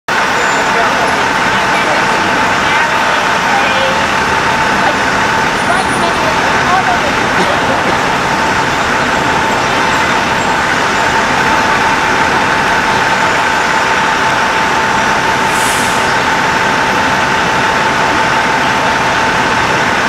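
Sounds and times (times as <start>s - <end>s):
city street traffic: 0.1s - 20.0s
indistinct voices: 0.1s - 20.0s
constant high hum: 0.2s - 15.4s.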